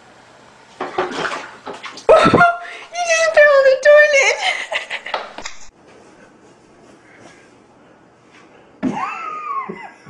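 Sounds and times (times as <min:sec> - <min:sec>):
water splashing in toilet bowl: 0:00.7 - 0:02.6.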